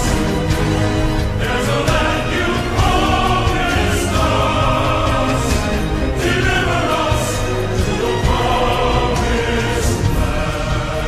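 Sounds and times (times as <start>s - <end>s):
choir singing sustained notes: 0.0s - 11.0s
orchestral accompaniment: 0.0s - 11.0s.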